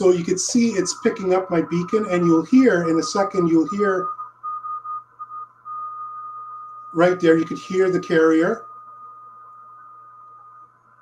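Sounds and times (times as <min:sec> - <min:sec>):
low hum: 0:00.0 - 0:11.0
steady whistle-like radio tone: 0:00.0 - 0:11.0.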